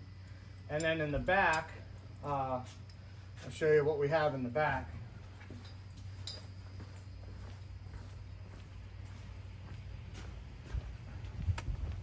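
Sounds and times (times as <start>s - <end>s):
steady low hum: 0.0s - 12.0s
footsteps on concrete floor: 2.6s - 3.6s, 5.0s - 12.0s.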